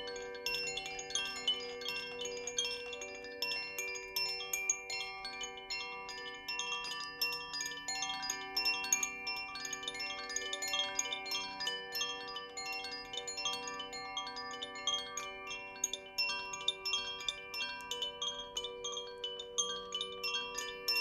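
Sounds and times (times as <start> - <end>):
bamboo wind chime ringing: 0.0 - 21.0.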